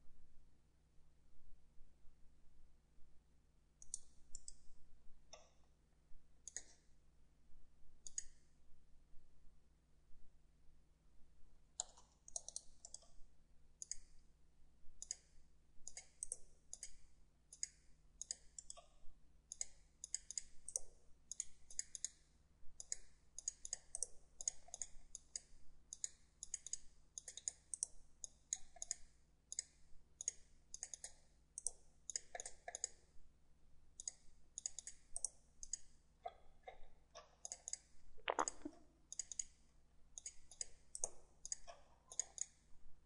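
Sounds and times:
computer mouse clicking: 0:03.8 - 0:04.7, 0:06.4 - 0:06.9, 0:08.0 - 0:08.5, 0:11.8 - 0:13.2, 0:13.8 - 0:14.2, 0:15.0 - 0:18.9, 0:19.5 - 0:22.2, 0:22.8 - 0:33.1, 0:34.0 - 0:39.6, 0:40.2 - 0:42.7.

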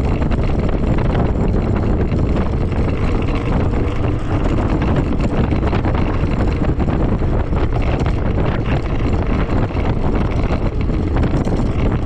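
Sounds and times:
low road rumble: 0:00.0 - 0:12.0
wind rush on microphone: 0:00.0 - 0:12.0.

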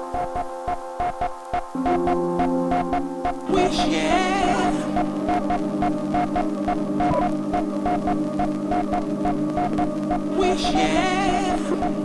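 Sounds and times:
organ-like chord drone: 0:01.8 - 0:08.4
faint percussion ticks: 0:05.0 - 0:10.3.

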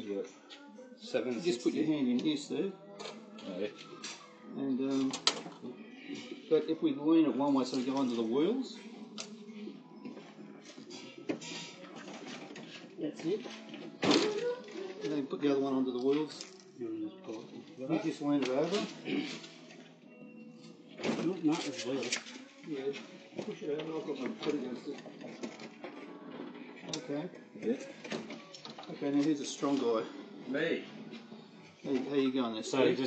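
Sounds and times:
low faint voices: 0:00.0 - 0:33.0.

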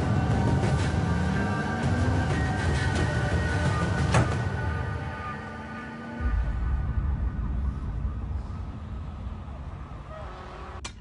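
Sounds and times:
deep traffic rumble: 0:00.0 - 0:11.0.

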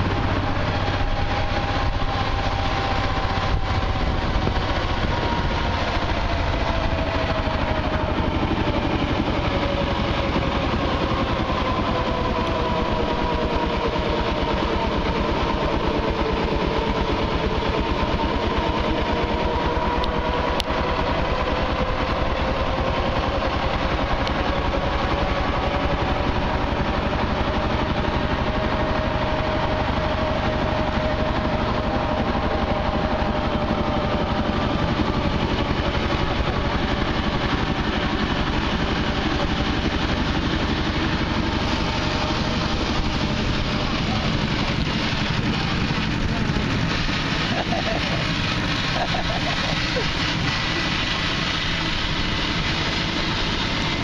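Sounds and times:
road rumble: 0:00.0 - 0:54.0
small engine running: 0:00.0 - 0:54.0.

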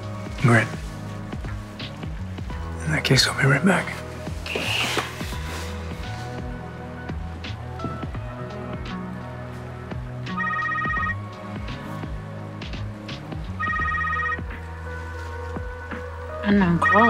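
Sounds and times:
soft background music: 0:00.0 - 0:17.0
phone ringtone trilling: 0:10.3 - 0:11.2, 0:13.6 - 0:14.5, 0:16.7 - 0:17.0.

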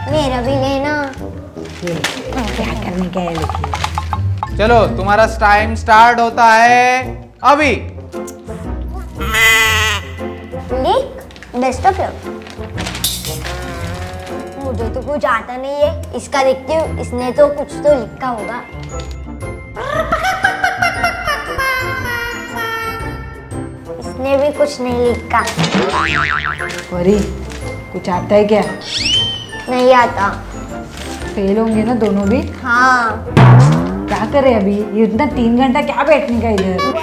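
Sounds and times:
background music: 0:00.0 - 0:37.0
comic sheep bleat: 0:09.2 - 0:10.2
cartoon boing sound effect: 0:25.8 - 0:26.7, 0:33.4 - 0:34.2.

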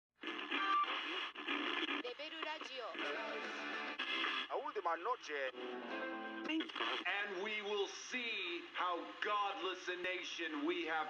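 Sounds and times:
thin radio-like music: 0:00.2 - 0:11.0
voices speaking: 0:00.4 - 0:11.0.

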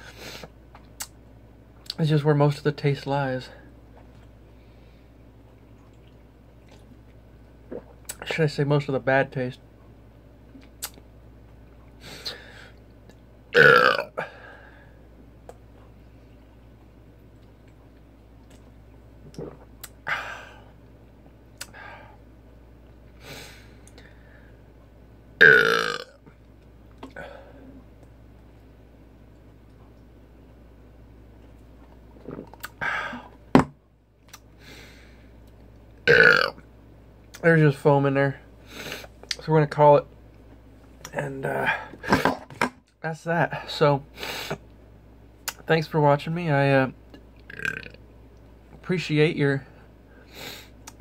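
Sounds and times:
man burping loudly: 0:13.6 - 0:14.3, 0:25.4 - 0:26.2, 0:36.0 - 0:36.6.

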